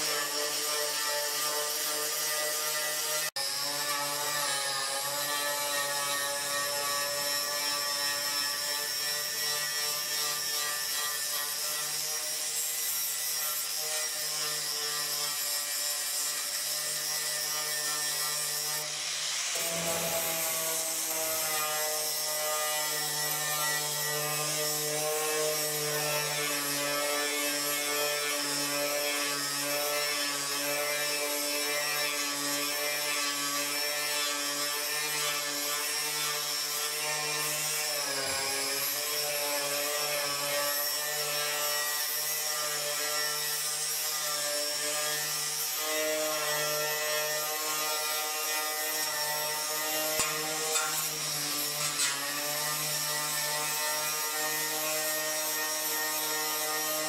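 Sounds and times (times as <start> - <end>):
electric sander on steel: 0.0 - 57.0.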